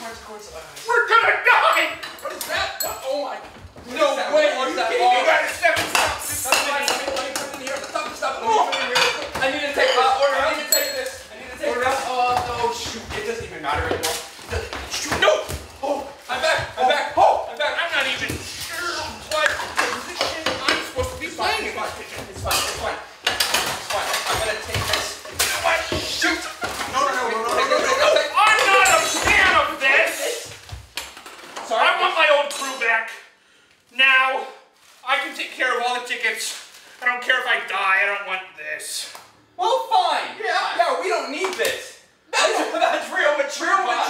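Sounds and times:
people scuffling: 0.0s - 31.0s
kitchenware clattering: 1.5s - 3.8s, 5.5s - 15.7s, 18.0s - 30.0s, 32.4s - 32.9s.

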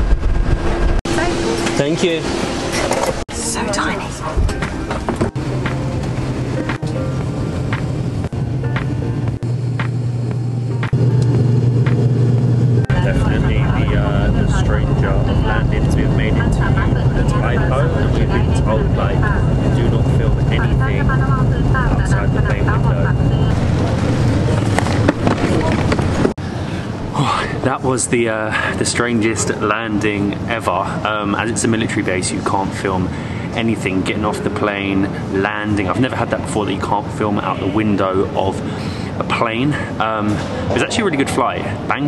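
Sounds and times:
propeller airliner engines droning: 1.0s - 42.0s
muffled voices: 12.8s - 26.3s, 26.9s - 42.0s.

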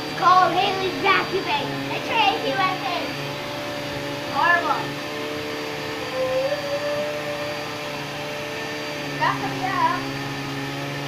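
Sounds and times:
vacuum cleaner running: 0.0s - 11.0s.

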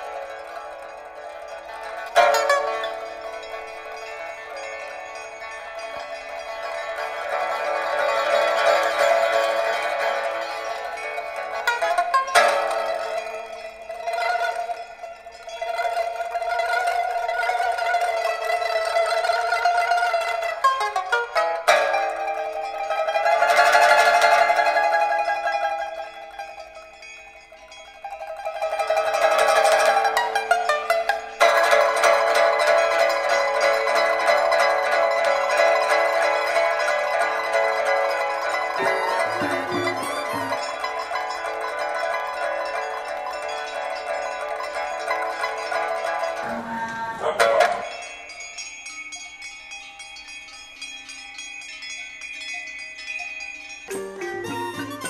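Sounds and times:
bell-like chiming tones: 0.0s - 17.1s, 24.8s - 33.7s, 37.3s - 55.0s
pipa tremolo: 0.0s - 27.2s, 28.0s - 48.7s, 53.9s - 55.0s.

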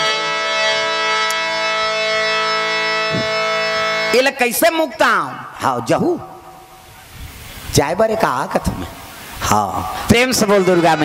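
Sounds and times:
harmonium drone: 0.0s - 5.5s, 10.1s - 11.0s.

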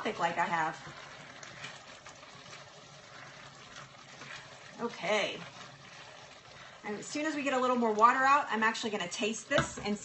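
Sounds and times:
liquid simmering in a pot: 0.0s - 10.0s.

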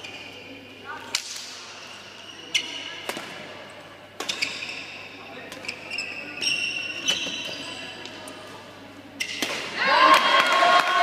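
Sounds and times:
racket hitting shuttlecock: 3.0s - 3.5s.

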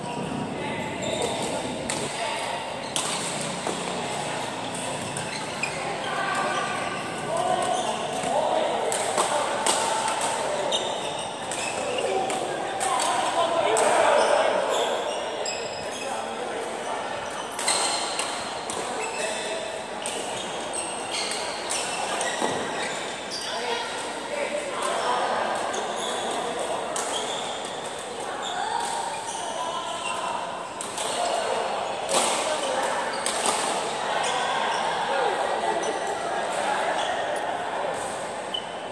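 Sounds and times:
players' voices: 0.0s - 38.9s
rackets hitting shuttlecock: 1.2s - 5.4s.

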